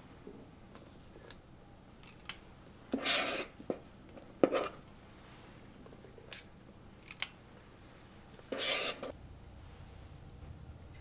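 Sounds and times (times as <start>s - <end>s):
scoop scraping metal bowl: 8.5s - 9.1s.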